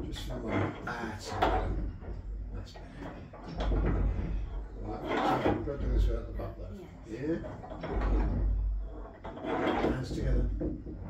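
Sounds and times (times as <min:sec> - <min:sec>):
low rumble of swinging bell: 0:00.0 - 0:09.1.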